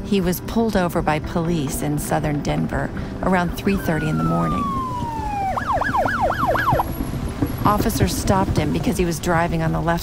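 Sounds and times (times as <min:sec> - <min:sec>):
police siren wailing and yelping: 0:03.6 - 0:06.9.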